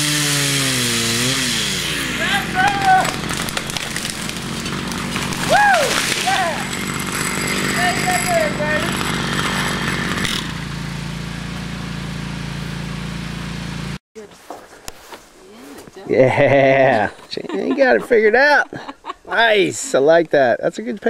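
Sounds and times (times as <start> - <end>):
chainsaw engine running: 0.0 - 14.0.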